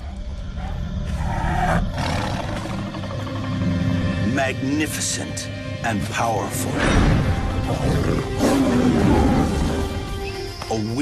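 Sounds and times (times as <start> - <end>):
tiger growling: 0.0 - 4.3, 6.7 - 10.1.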